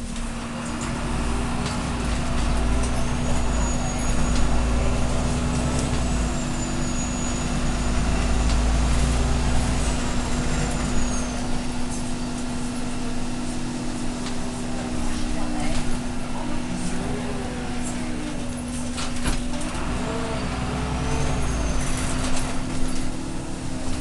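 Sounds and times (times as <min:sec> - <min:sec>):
diesel engine rumble: 0:00.0 - 0:24.0
road noise: 0:00.0 - 0:24.0.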